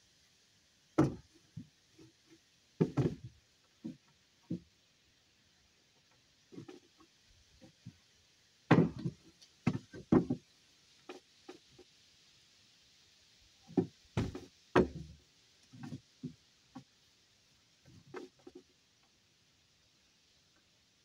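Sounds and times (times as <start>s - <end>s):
wooden boards knocking: 2.8s - 3.3s, 8.7s - 10.4s, 13.8s - 15.1s.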